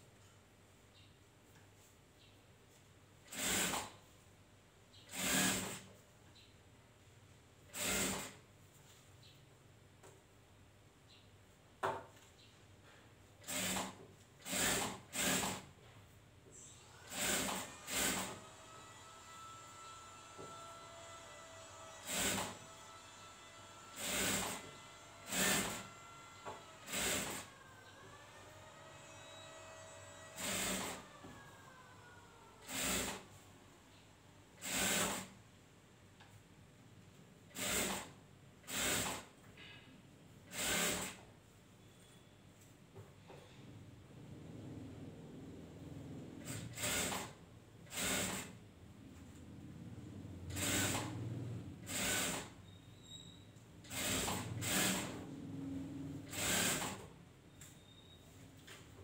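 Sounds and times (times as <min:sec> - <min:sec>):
sewing machine stitching: 0:03.2 - 0:04.0, 0:05.1 - 0:05.9, 0:07.7 - 0:08.4, 0:13.4 - 0:15.7, 0:17.0 - 0:31.5, 0:32.6 - 0:33.4, 0:34.6 - 0:35.4, 0:37.5 - 0:39.3, 0:40.5 - 0:41.2, 0:46.4 - 0:48.6, 0:50.4 - 0:52.6, 0:53.8 - 0:57.1.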